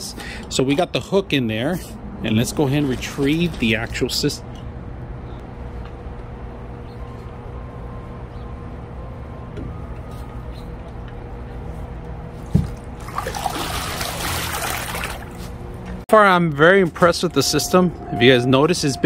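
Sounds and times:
low steady hum: 0.0s - 19.0s
pool water splashing: 12.6s - 15.5s.

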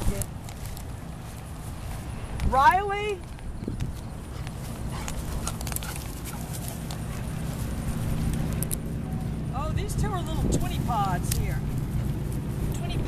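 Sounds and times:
wind rumble on microphone: 0.0s - 5.9s, 7.0s - 13.0s
footsteps through dry grass: 0.0s - 9.5s, 10.4s - 13.0s.

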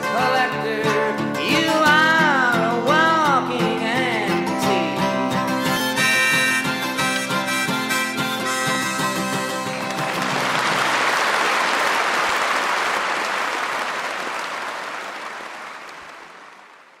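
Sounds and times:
harmonica: 0.0s - 10.9s
acoustic guitar: 0.0s - 11.2s
audience applause: 9.4s - 17.0s.

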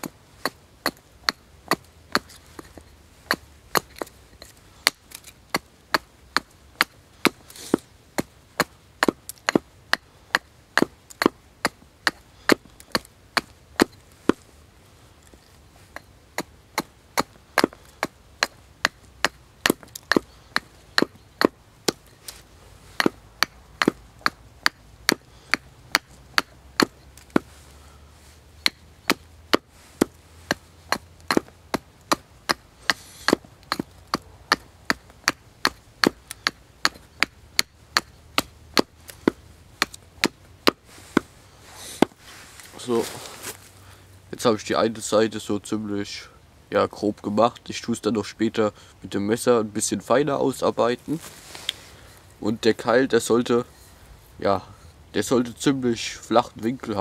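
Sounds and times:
hatchet chopping wood: 0.0s - 14.4s, 16.0s - 22.4s, 23.0s - 27.6s, 28.6s - 41.3s.

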